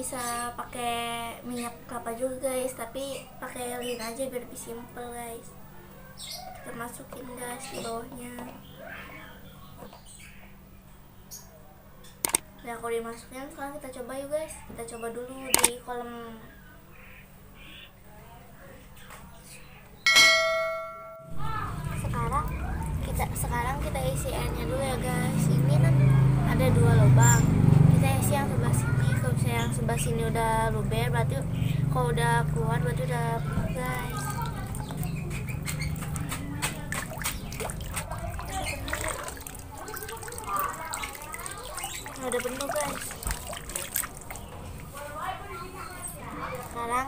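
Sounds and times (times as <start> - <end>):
outdoor background noise: 0.0 - 47.0
small splashy clicks: 12.2 - 12.5, 15.5 - 15.8, 33.9 - 44.5
bright bell ding: 20.1 - 21.4
girl's voice: 21.3 - 35.1, 38.1 - 43.3, 45.0 - 47.0
water trickling and dripping: 31.0 - 45.0.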